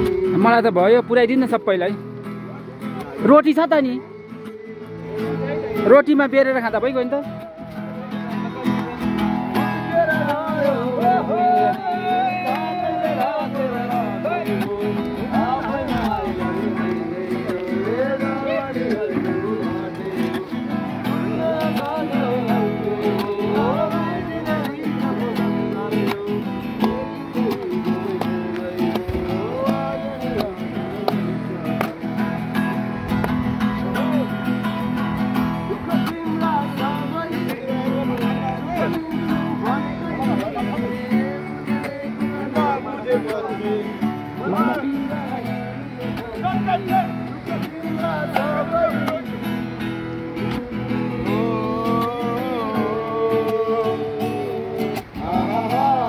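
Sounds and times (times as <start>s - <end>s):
man singing: 0.0s - 2.2s, 4.0s - 56.0s
acoustic guitar strumming: 0.0s - 56.0s.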